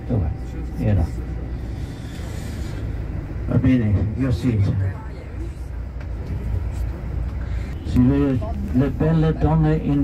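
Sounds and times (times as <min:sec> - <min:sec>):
coach engine rumble: 0:00.0 - 0:10.0
road noise: 0:00.0 - 0:10.0.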